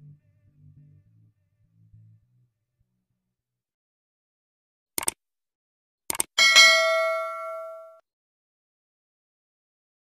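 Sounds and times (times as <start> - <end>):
mouse clicks: 6.1 - 6.3
notification bell ding: 6.4 - 8.0.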